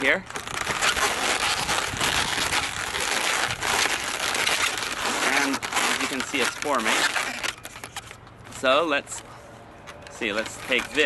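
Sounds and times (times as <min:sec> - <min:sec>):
balloons rubbing scratchily: 0:00.0 - 0:08.2, 0:10.2 - 0:11.0.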